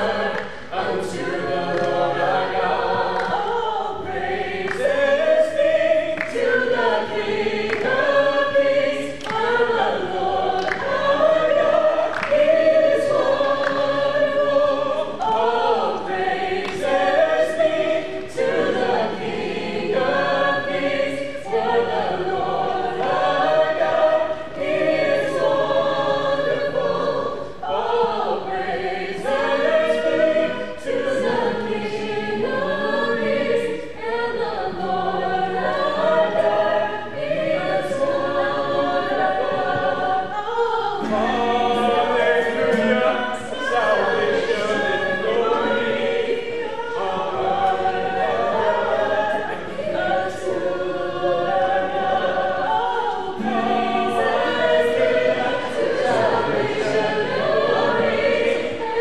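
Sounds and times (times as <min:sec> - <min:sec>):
group of people singing: 0:00.0 - 0:59.0.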